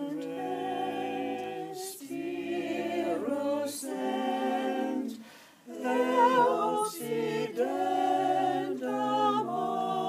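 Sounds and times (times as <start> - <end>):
vocal group singing a cappella: 0.0 - 10.0.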